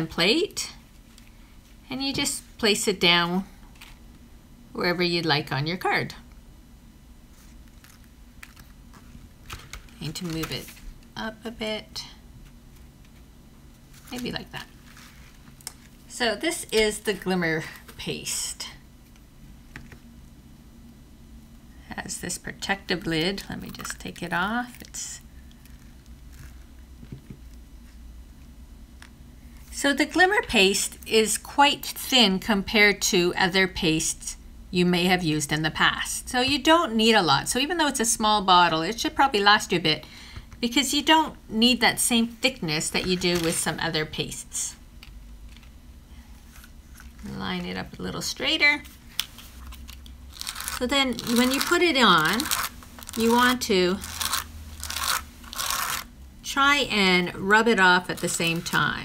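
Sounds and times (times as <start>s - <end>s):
low room hum: 0.0s - 59.0s.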